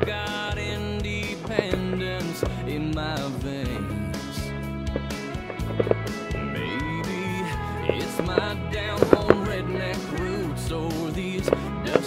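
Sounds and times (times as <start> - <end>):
instrumental music: 0.0 - 12.0.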